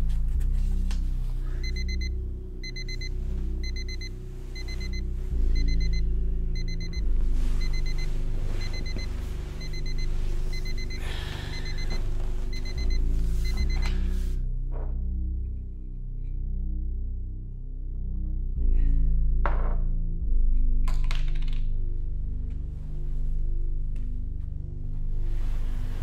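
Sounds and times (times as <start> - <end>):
low sustained music: 0.0 - 26.0
digital watch alarm beeping: 1.6 - 14.1.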